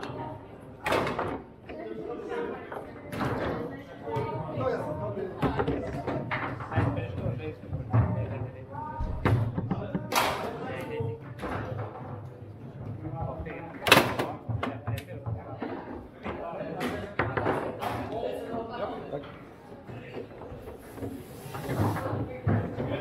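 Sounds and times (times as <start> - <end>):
background chatter: 0.0 - 23.0.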